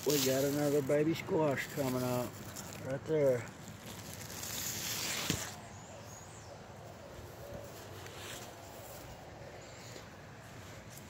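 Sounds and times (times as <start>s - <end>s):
rustling: 0.0s - 5.6s
faint bird chirp: 5.3s - 10.2s.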